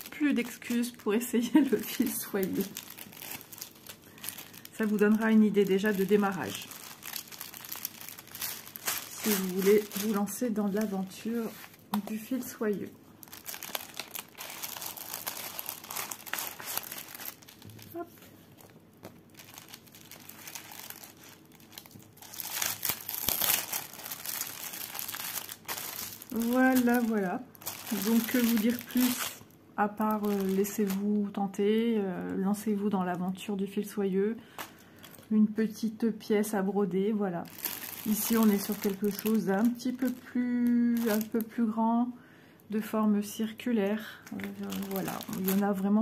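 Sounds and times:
plastic bag crinkling: 0:00.0 - 0:31.6, 0:34.5 - 0:35.3, 0:37.4 - 0:41.7, 0:43.9 - 0:46.0.

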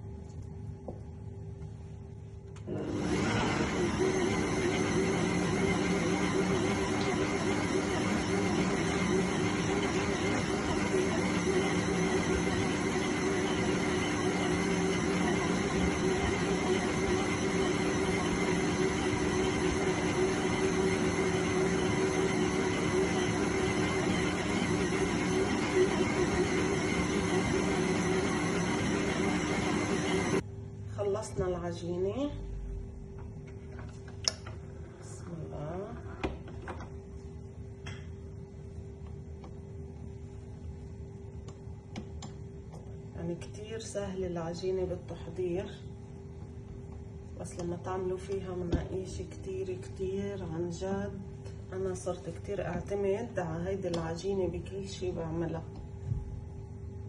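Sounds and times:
stand mixer motor running: 0:02.7 - 0:30.4.

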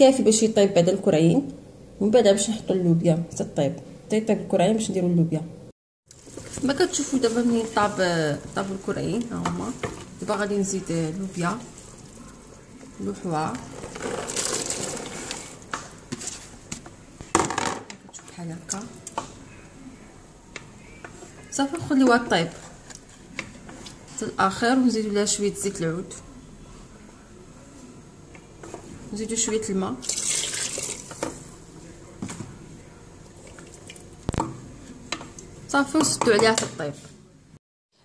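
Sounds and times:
wooden spoon stirring stew: 0:06.1 - 0:17.0, 0:20.5 - 0:24.2, 0:28.3 - 0:29.7
liquid squelching: 0:13.6 - 0:15.7.

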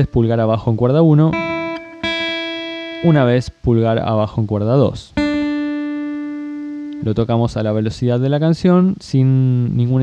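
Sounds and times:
acoustic guitar note plucked: 0:01.0 - 0:03.7, 0:05.2 - 0:07.6.

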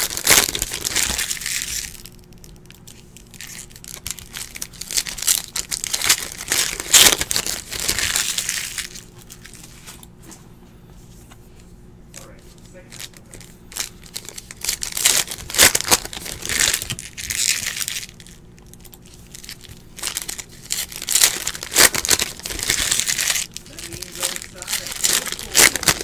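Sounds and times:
foil wrapper crinkling and tearing: 0:00.0 - 0:09.8, 0:12.8 - 0:26.0.

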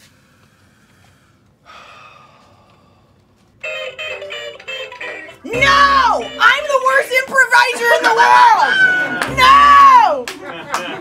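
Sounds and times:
breathy sigh: 0:00.5 - 0:03.2
toy electric guitar tune: 0:03.6 - 0:06.9.

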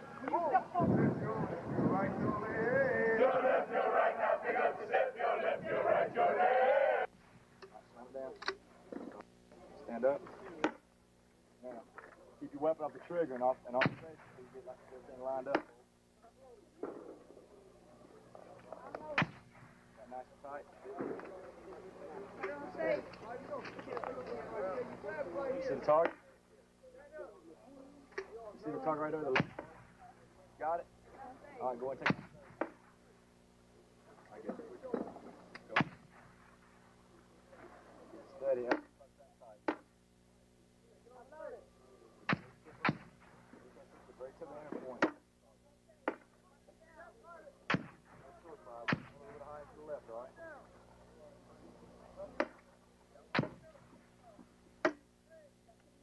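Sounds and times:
indistinct men's voices: 0:00.0 - 0:07.1
soldiers chanting a military cadence: 0:01.4 - 0:07.1
gunshots: 0:42.3 - 0:43.3, 0:47.7 - 0:48.2.

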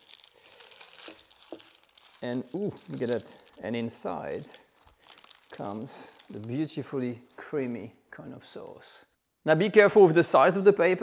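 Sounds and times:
baking paper crinkling: 0:00.0 - 0:08.1.

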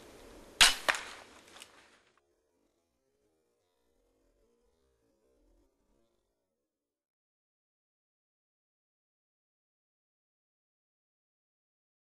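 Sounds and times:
arrow striking smack: 0:00.6 - 0:01.7
bow release crack: 0:00.6 - 0:02.0.

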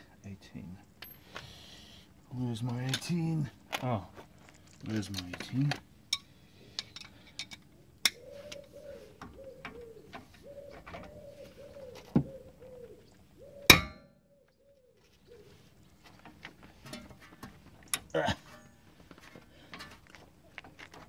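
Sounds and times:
metal tools clinking and clanging: 0:04.4 - 0:07.7, 0:16.4 - 0:18.8
pigeon cooing: 0:07.8 - 0:15.8.

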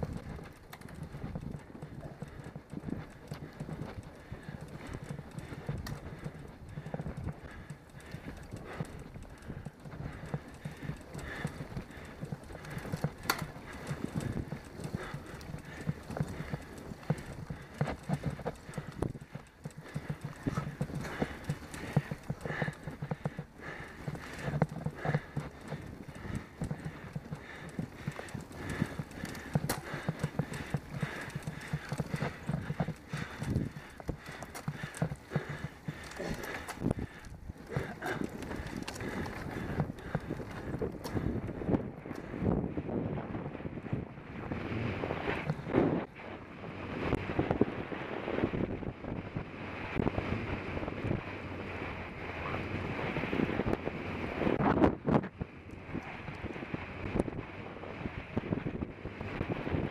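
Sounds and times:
bike rattling over rough asphalt: 0:00.0 - 0:59.9
wind rumble on microphone: 0:00.0 - 0:59.9.

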